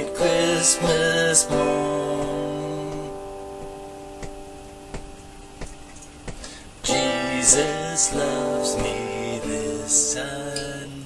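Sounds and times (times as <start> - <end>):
acoustic guitar chord: 0.0 - 11.0.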